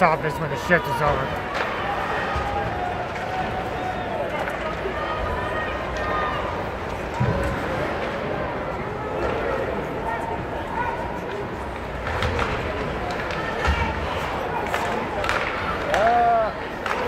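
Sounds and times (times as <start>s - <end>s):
hockey sticks and puck clacking: 0.0s - 9.8s, 11.2s - 17.0s
crowd chatter: 0.0s - 17.0s.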